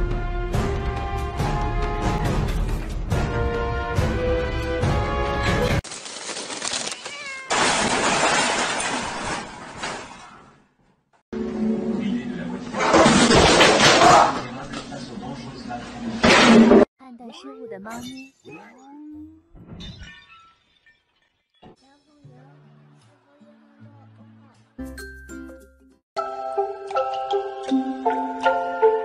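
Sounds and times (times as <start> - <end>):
crash of something breaking: 5.8 - 10.6, 12.8 - 14.5, 16.2 - 16.9
cat meowing: 6.9 - 7.6.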